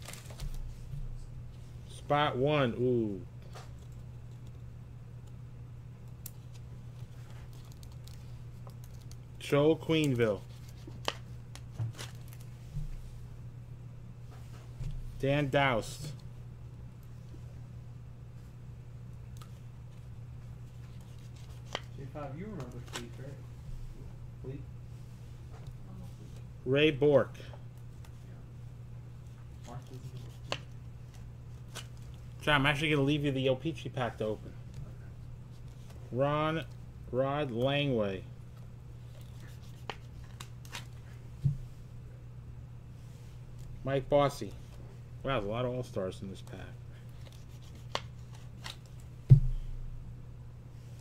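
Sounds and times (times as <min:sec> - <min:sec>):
steady low hum: 0:00.0 - 0:51.0
low thump: 0:49.3 - 0:49.7.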